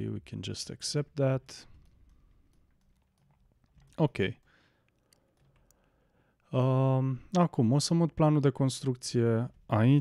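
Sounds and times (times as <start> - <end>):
computer mouse clicks: 1.5 - 6.5.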